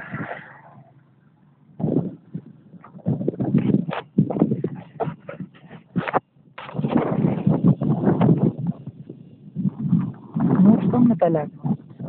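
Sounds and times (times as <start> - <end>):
wind buffeting microphone: 0.0 - 0.9, 1.6 - 12.0.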